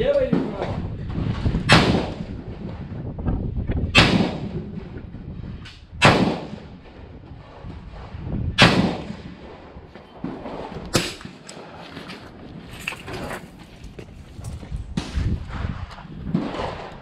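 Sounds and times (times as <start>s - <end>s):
rifle shots with echo: 1.6s - 3.0s, 3.8s - 5.1s, 6.0s - 11.7s, 16.3s - 17.0s.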